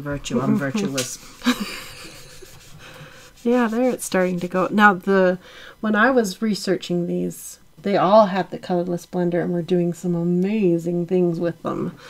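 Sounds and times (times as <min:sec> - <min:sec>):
short breathy laugh: 0:01.3 - 0:03.2
sponge scrubbing pastel on paper: 0:02.1 - 0:05.0.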